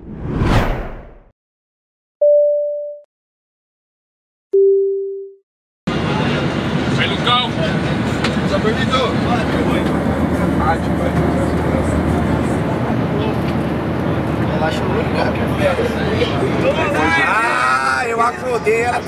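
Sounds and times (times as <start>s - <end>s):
short tone: 2.2s - 3.1s, 4.6s - 5.4s
airliner cabin drone: 5.9s - 17.0s
passengers talking: 5.9s - 19.0s.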